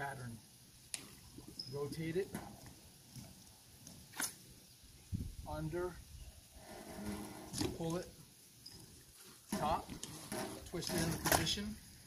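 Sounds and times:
hose scrape: 6.5s - 11.7s.

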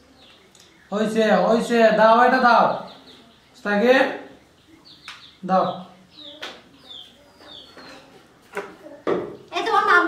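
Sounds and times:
falling bird chirps: 0.0s - 9.6s.

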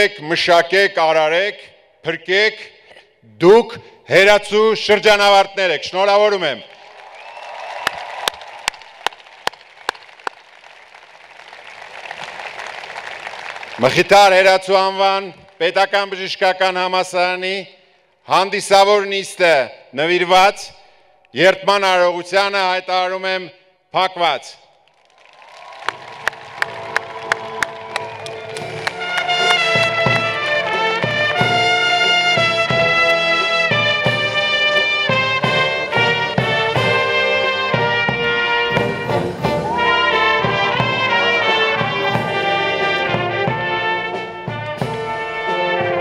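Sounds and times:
man's hands clapping: 6.7s - 14.1s, 24.9s - 30.8s
audience applause: 6.7s - 14.2s, 24.9s - 31.7s, 39.6s - 43.4s
military brass band playing: 26.2s - 46.0s.

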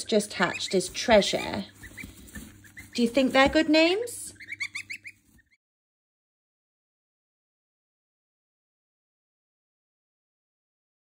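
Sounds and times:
goslings peeping: 0.0s - 5.6s.

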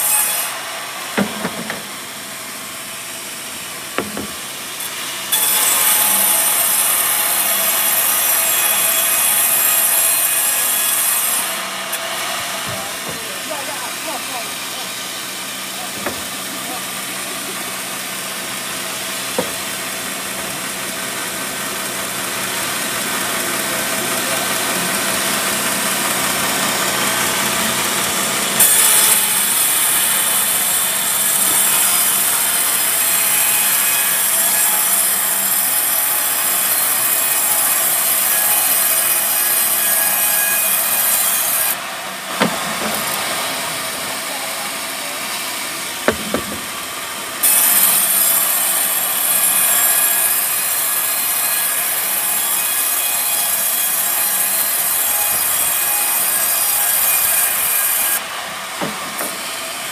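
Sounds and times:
band sawmill running: 0.0s - 59.9s
saw blade cutting wood: 0.0s - 59.9s
short knocks: 16.0s - 16.4s, 19.4s - 19.7s, 46.0s - 46.8s.

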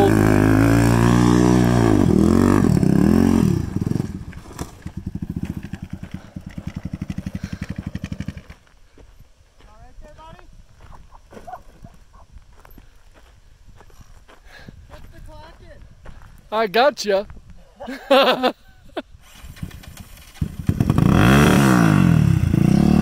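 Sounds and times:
atv engine revving and idling: 0.0s - 8.6s, 19.6s - 23.0s.

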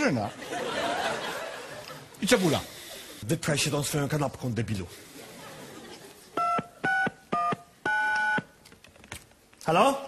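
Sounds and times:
touch-tone keypad beeps: 6.4s - 8.6s.

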